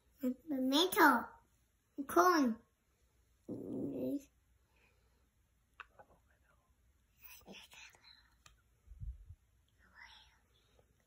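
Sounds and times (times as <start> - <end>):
faint whispering: 5.8 - 8.5, 9.6 - 11.0.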